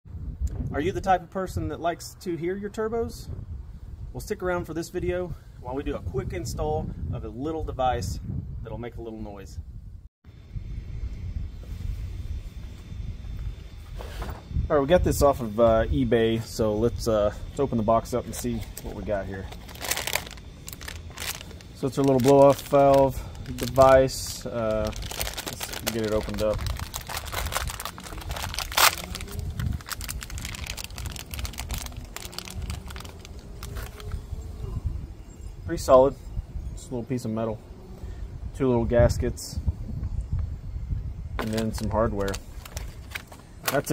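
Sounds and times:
wind buffeting microphone: 0.1 - 36.9, 37.7 - 43.9
plastic bag crinkling: 19.5 - 34.2, 41.4 - 43.9.

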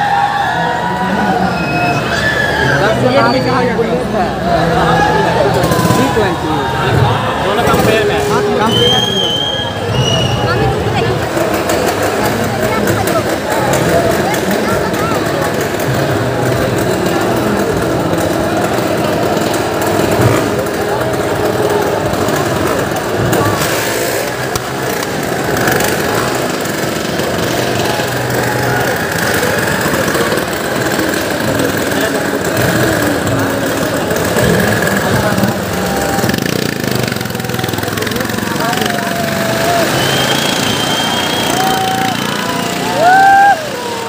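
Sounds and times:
crowd voices: 0.0 - 44.0
motorcycle engines running: 0.0 - 44.0.

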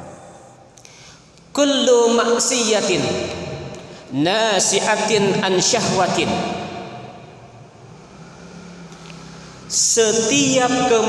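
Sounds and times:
man's voice echo: 0.0 - 8.6, 9.2 - 11.0.

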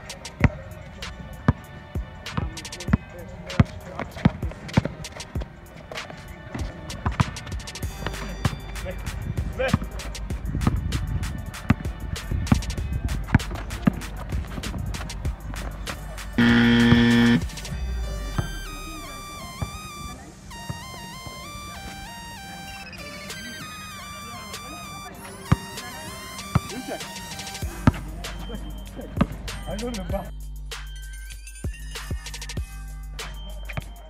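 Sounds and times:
electronic music with beat: 0.0 - 34.0
loud held electronic tone: 16.4 - 17.6, 18.6 - 27.6.

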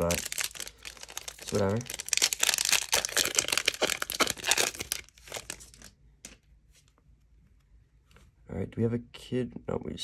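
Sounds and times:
foil wrapper crinkling: 0.0 - 5.9.

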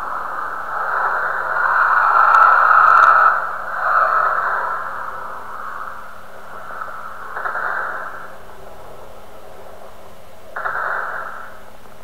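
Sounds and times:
faint steady hum: 0.0 - 12.0
muffled static hiss: 0.0 - 12.0.

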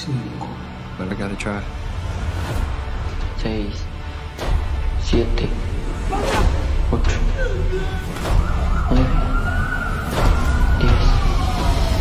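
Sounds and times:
rising wailing tone: 7.4 - 12.0.

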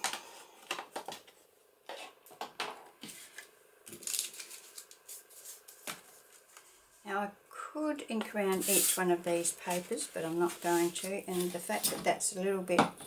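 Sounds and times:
paper being handled: 3.1 - 6.8, 9.6 - 11.8.

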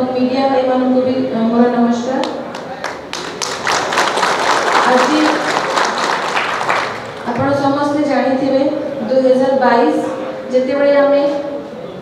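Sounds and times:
crowd applauding: 2.2 - 7.5.

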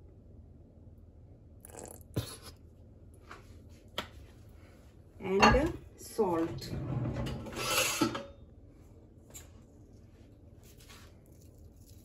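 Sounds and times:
sauce bottle sputtering: 1.6 - 2.5.

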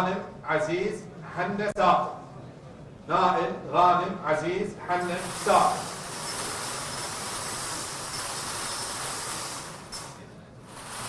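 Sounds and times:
balls rattling in wire cage: 5.0 - 11.0.

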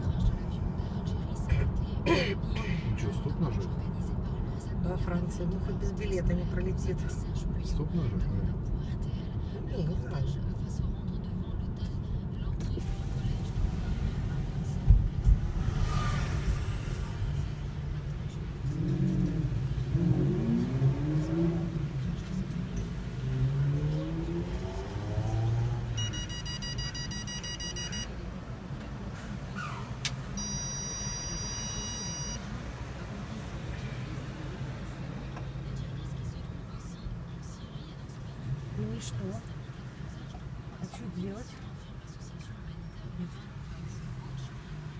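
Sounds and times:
car engine and road rumble: 0.0 - 44.9
long electronic beeps: 25.9 - 28.1, 30.4 - 32.5.

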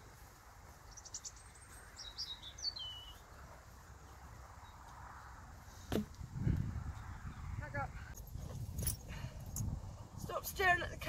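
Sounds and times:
wind rumbling on microphone: 4.3 - 11.0.

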